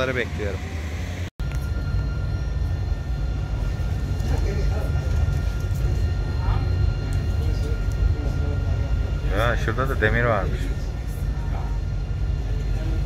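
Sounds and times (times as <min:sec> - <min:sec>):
tram rumble and whine: 0:00.0 - 0:13.0
faint passenger voices: 0:03.8 - 0:13.0.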